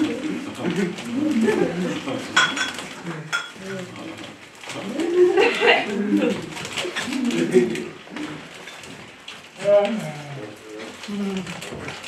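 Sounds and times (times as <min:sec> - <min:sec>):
people talking and laughing: 0:00.0 - 0:08.5.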